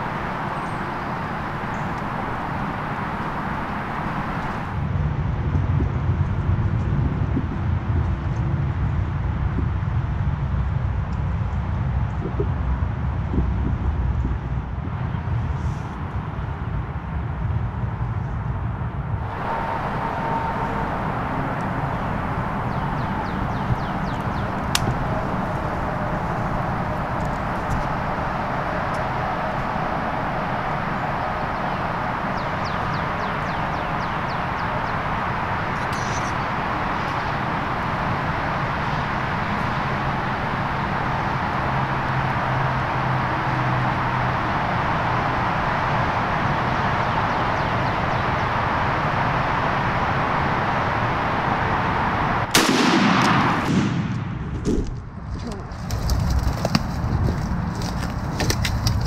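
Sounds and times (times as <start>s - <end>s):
steady rushing noise: 0.0s - 59.0s
shotgun blast with echo: 52.5s - 54.5s.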